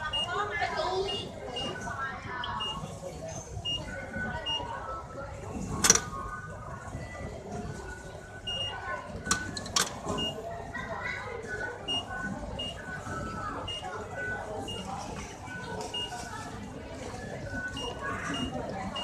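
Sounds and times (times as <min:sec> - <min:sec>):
short high beeps: 0:00.1 - 0:00.3, 0:11.9 - 0:12.9, 0:13.7 - 0:14.9, 0:17.7 - 0:19.0.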